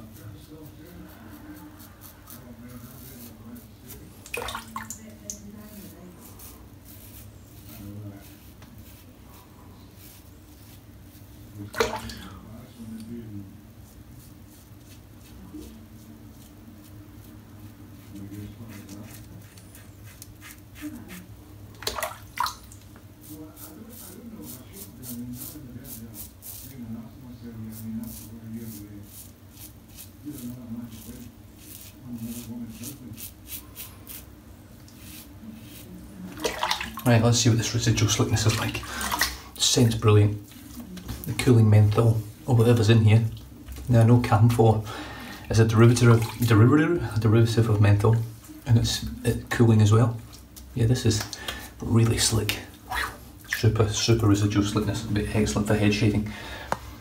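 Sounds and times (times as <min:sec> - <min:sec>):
razor scraping stubble: 0:00.0 - 0:04.2, 0:05.2 - 0:11.2, 0:18.1 - 0:21.4, 0:23.2 - 0:36.1.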